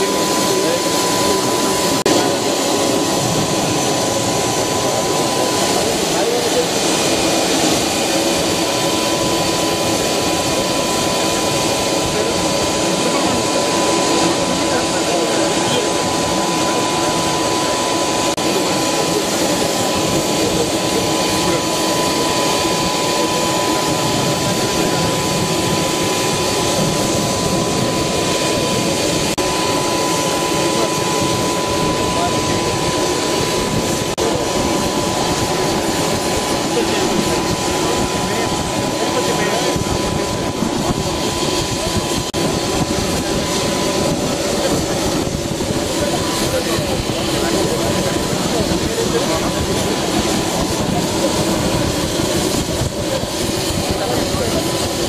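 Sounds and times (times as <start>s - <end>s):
aircraft turbine engine running: 0.0s - 55.0s
high steady whine: 0.0s - 55.0s.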